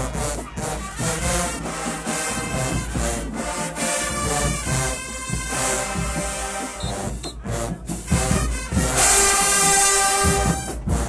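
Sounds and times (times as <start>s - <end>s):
marching band brass playing: 0.0s - 11.0s.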